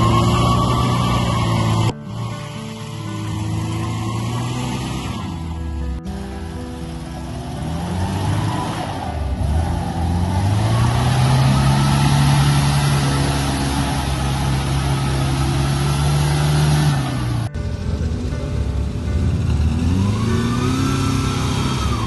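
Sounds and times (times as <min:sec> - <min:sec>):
truck engine revving: 0:00.0 - 0:22.0.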